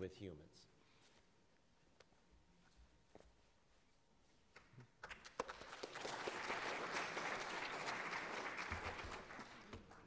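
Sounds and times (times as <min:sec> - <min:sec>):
audience applauding: 0:05.1 - 0:10.0.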